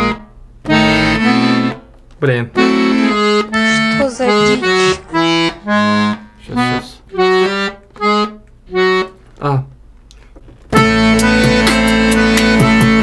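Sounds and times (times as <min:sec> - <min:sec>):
button accordion chords: 0:00.0 - 0:09.7, 0:10.7 - 0:13.0.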